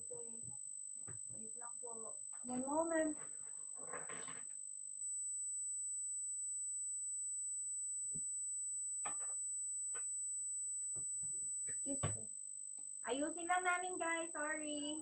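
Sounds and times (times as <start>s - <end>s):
high-pitched electronic whine: 0.0s - 15.0s.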